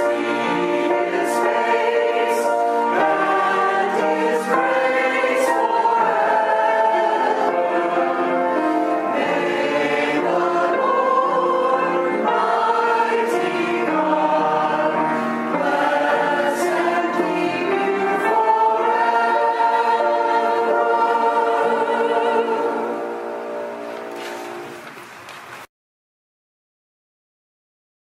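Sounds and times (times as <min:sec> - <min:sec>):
choir singing: 0:00.0 - 0:24.6.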